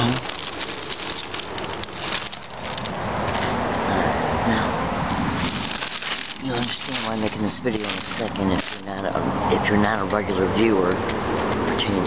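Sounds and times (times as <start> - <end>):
plastic sheeting rustling: 0.0 - 3.6, 5.0 - 9.1.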